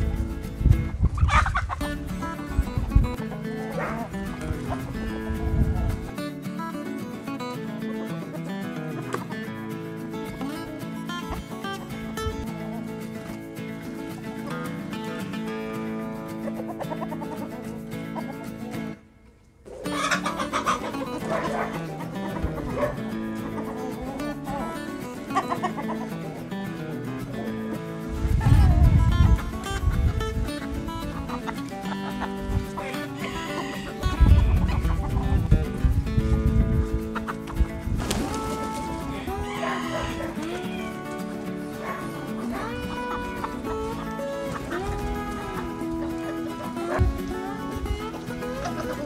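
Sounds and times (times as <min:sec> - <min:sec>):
guitar background music: 0:00.0 - 0:49.0
chicken squawk: 0:01.2 - 0:02.1, 0:16.3 - 0:18.6, 0:19.7 - 0:26.3, 0:30.6 - 0:35.4, 0:37.1 - 0:49.0.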